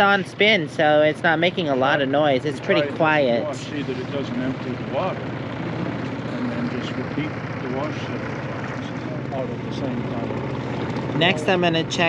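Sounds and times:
washing machine motor hum: 0.0s - 12.0s.

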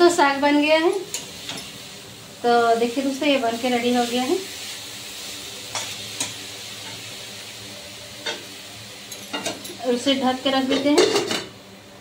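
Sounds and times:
greens sizzling in pan: 0.0s - 12.0s.

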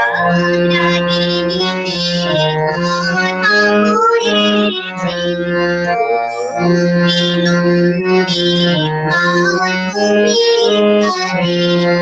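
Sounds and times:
instrumental drone: 0.0s - 10.2s
woman singing: 0.0s - 12.0s.

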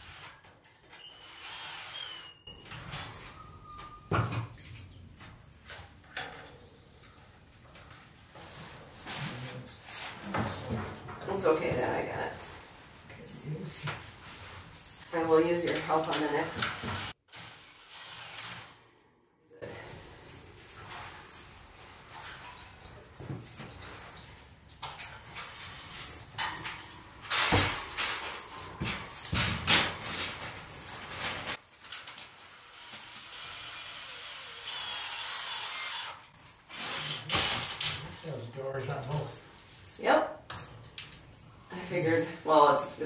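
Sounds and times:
finches chirping: 1.0s - 5.8s, 11.3s - 13.8s, 19.5s - 24.4s, 30.0s - 31.8s, 38.6s - 43.0s
cordless drill driving screws: 32.8s - 36.2s.

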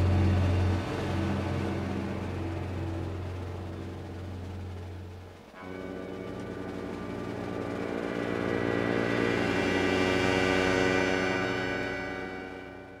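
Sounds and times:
orchestral sustained chord: 0.0s - 13.0s.

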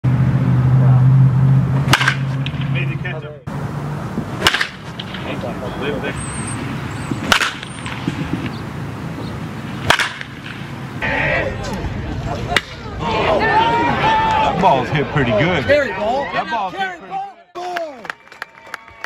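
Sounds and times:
baseball bat cracking balls: 1.8s - 2.8s, 4.2s - 5.5s, 6.7s - 10.8s.

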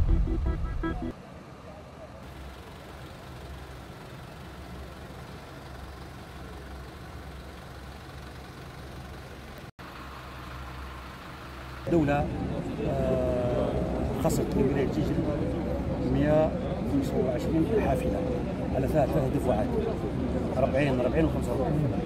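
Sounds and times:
music jingle: 0.0s - 1.2s.

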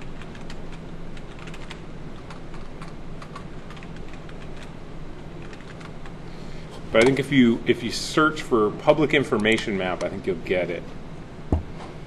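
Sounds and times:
keyboard typing: 0.0s - 4.7s, 5.4s - 6.0s
low steady hum: 0.0s - 12.0s.

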